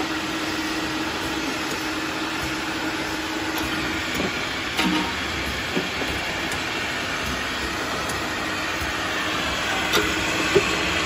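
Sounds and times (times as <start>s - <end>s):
filling machine and conveyor running: 0.0s - 11.0s.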